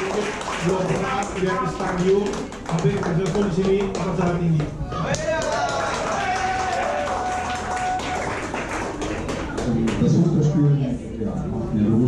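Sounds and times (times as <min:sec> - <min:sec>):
low background chatter: 0:01.8 - 0:12.0.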